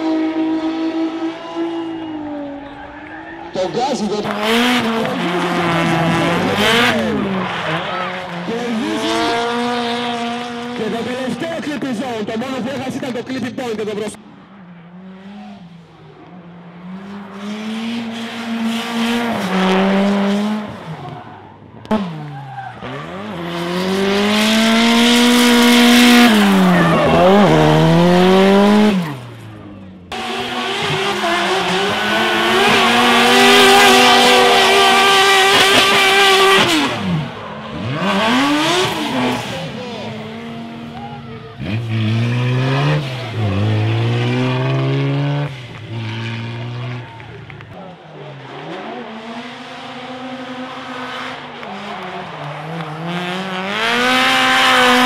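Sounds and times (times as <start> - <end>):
car engines revving high: 0.0 - 55.0
tyres squealing and skidding: 1.4 - 9.8, 19.3 - 49.2.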